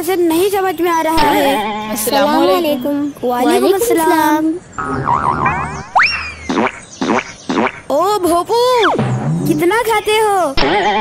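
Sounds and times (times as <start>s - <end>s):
falling boing-like tones: 4.8s - 7.8s, 8.8s - 9.8s, 10.6s - 11.0s.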